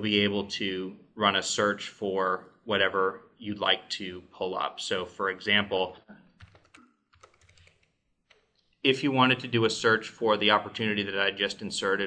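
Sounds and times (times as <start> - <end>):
man's voice: 0.0 - 6.0, 8.9 - 12.0
keyboard keystrokes: 6.4 - 8.5.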